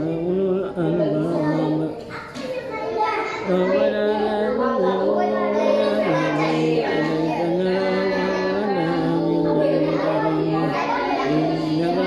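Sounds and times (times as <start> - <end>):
man chanting recitation: 0.0 - 2.3, 3.4 - 12.0.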